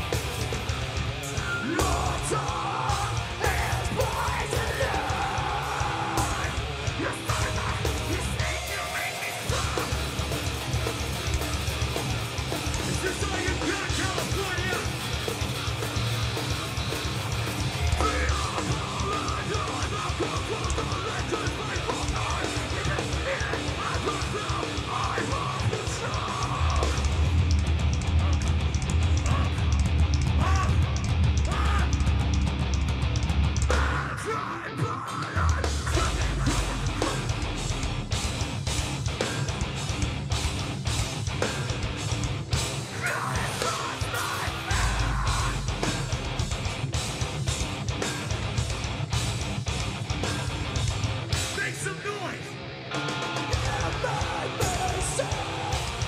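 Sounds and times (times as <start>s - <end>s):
bass guitar: 0.0s - 56.0s
distorted electric guitars: 0.0s - 56.0s
pounding drum kit: 0.0s - 56.0s
screamed vocals: 1.4s - 10.1s, 17.7s - 27.2s, 29.2s - 29.8s, 30.4s - 32.0s, 33.7s - 37.8s, 42.9s - 46.2s, 53.2s - 56.0s.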